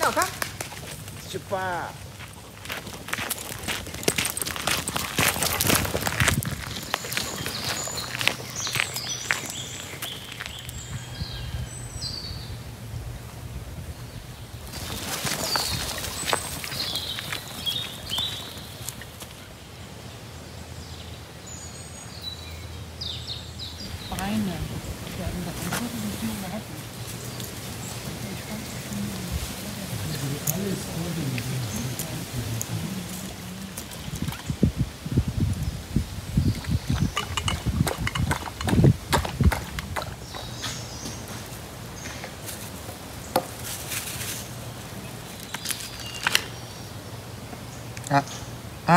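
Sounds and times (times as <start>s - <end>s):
footsteps crunching on gravel: 0.0s - 11.3s, 14.7s - 19.4s
songbirds chirping and whistling: 4.1s - 12.7s, 13.8s - 34.8s, 35.5s - 48.8s.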